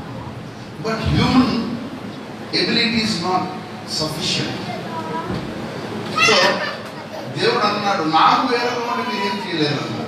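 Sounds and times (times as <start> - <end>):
murmur of children's voices: 0.0 - 10.0
man speaking into a microphone: 0.8 - 1.9, 2.5 - 4.7, 7.3 - 10.0.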